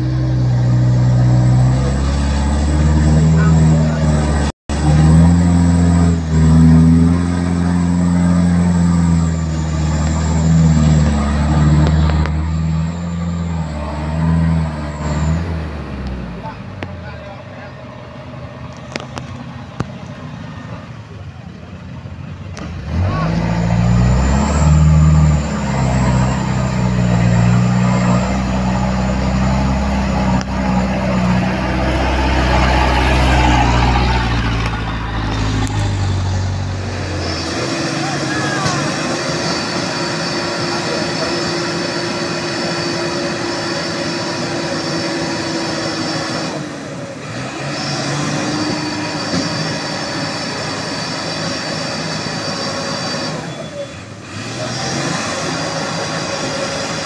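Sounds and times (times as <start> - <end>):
diesel truck engine revving: 0.0 - 57.0.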